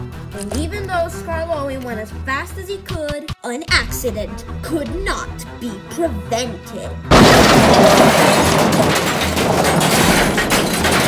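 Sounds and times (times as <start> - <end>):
clattering breaking wreckage: 7.1 - 11.0
loud train crash: 7.1 - 11.0.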